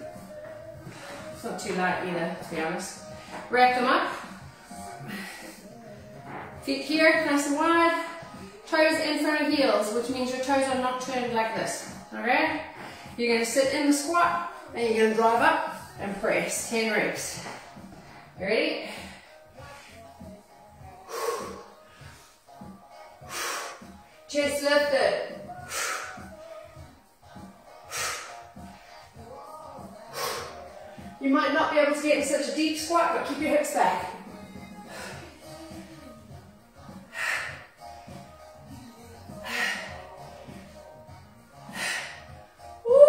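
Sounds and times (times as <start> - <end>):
background music: 0.0 - 43.0.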